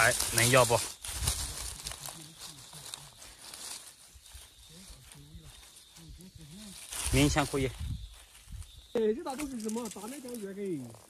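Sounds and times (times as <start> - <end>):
dry leaves rustling and crackling: 0.0 - 11.0.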